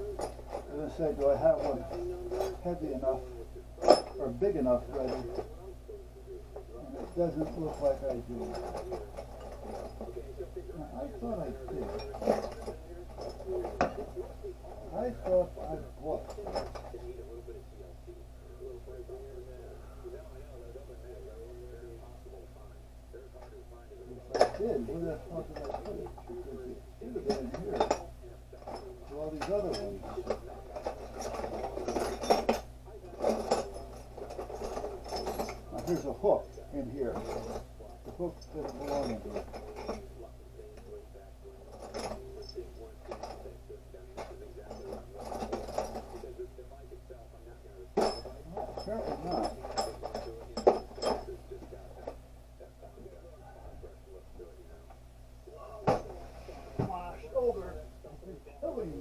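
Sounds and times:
steady low hum: 0:00.0 - 0:59.0
metal hardware rattling in container: 0:06.8 - 0:10.2, 0:10.9 - 0:14.2, 0:27.1 - 0:40.1, 0:44.2 - 0:46.2, 0:48.0 - 0:51.4.

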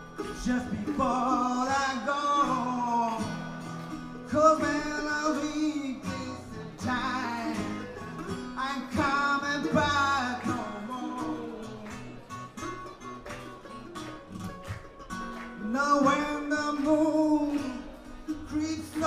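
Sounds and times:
acoustic guitar: 0:00.0 - 0:19.0
mandolin: 0:00.0 - 0:19.0.

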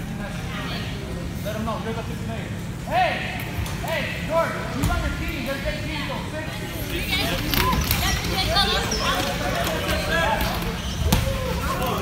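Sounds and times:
wheelchair tyres squeaking on floor: 0:07.4 - 0:12.0.

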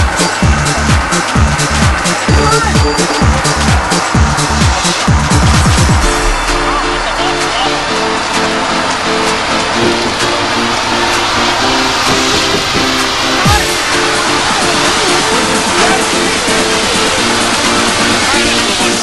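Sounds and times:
car road noise: 0:00.0 - 0:19.0
electronic dance music: 0:00.0 - 0:19.0.

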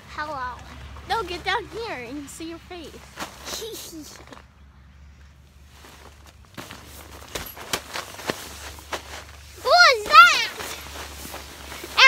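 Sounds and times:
children scuffling on inflatable: 0:05.7 - 0:12.0.

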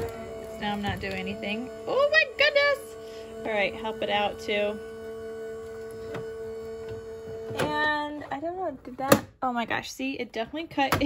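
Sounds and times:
die-cutting machine motor hum: 0:00.0 - 0:08.4.

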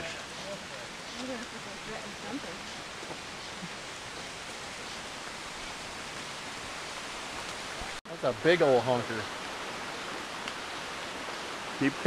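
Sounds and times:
forest ambience hiss: 0:00.0 - 0:12.0.

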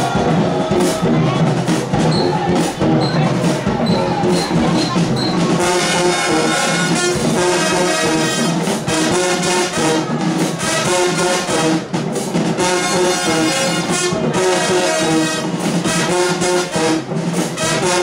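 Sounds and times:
marching band playing: 0:00.0 - 0:18.0.

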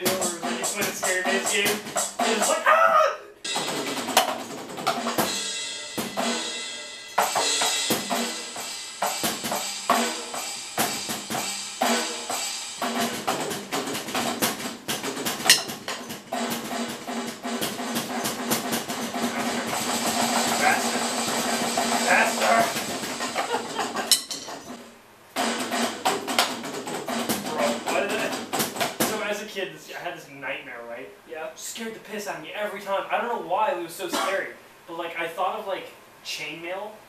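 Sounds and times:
electronic drum kit beat: 0:00.0 - 0:02.7, 0:03.4 - 0:29.4.

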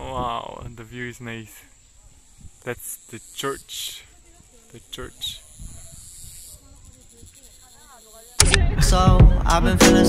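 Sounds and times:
faint distant voices: 0:00.0 - 0:09.6
high-pitched hiss: 0:00.0 - 0:09.6.

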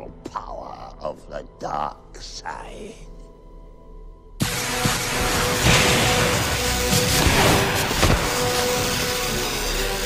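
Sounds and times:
electric crackling buzz: 0:04.4 - 0:10.0
sharp electric zaps: 0:04.5 - 0:10.0.

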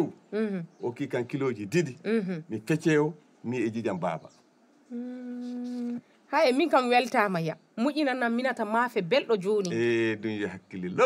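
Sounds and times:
woman humming: 0:00.3 - 0:00.7, 0:02.1 - 0:02.5, 0:04.9 - 0:06.0.

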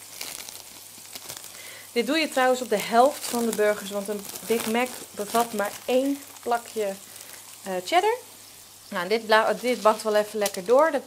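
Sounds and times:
burger patties sizzling in pan: 0:00.0 - 0:11.0
plastic wrap crinkling: 0:00.0 - 0:11.0.

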